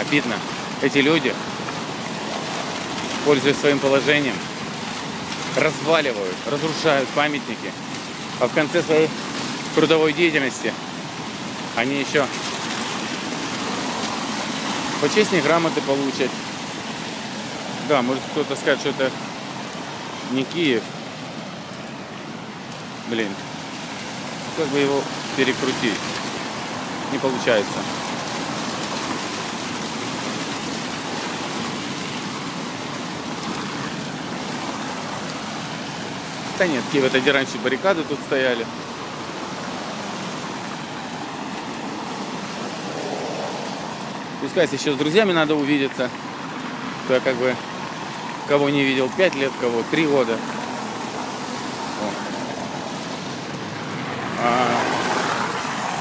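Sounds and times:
road traffic hum: 0.0 - 56.0
wet street noise hiss: 0.0 - 56.0.

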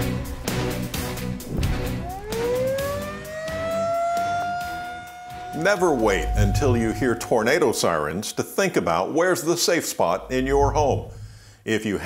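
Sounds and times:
tornado warning siren wailing: 1.7 - 9.3, 10.0 - 11.5.

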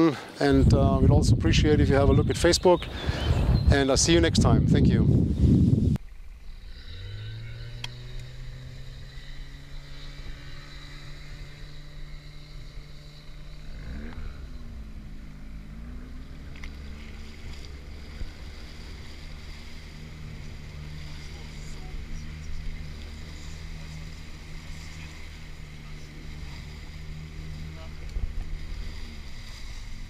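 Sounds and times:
outboard motor running: 6.2 - 30.0.

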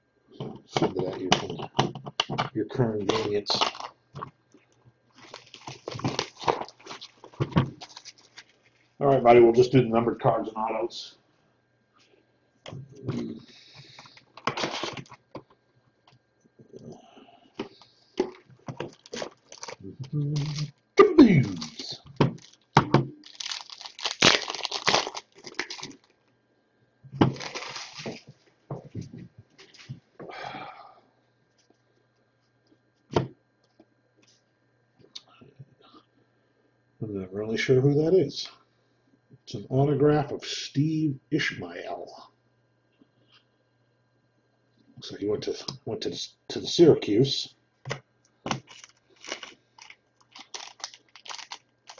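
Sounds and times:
foil wrapper crinkling and tearing: 3.1 - 4.0, 5.1 - 8.8, 13.8 - 15.2, 17.7 - 19.8, 20.4 - 26.2, 27.2 - 28.3, 48.5 - 51.9
cardboard box being torn open: 23.3 - 26.0.

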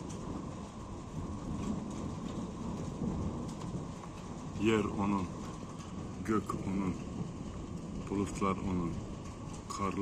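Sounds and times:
steady rain: 0.0 - 10.0
thunder rumble: 0.0 - 10.0.

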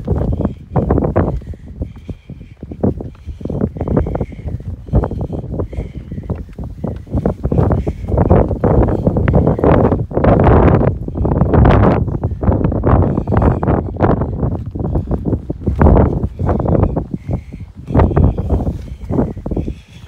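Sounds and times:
strong wind buffeting microphone: 0.0 - 20.0.

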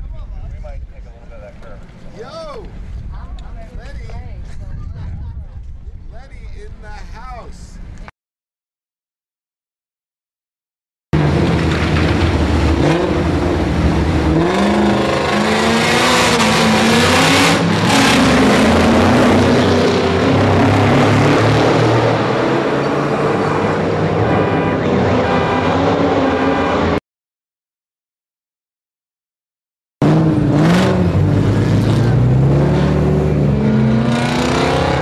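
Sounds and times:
car engine revving hard: 11.2 - 27.0, 30.0 - 35.0.

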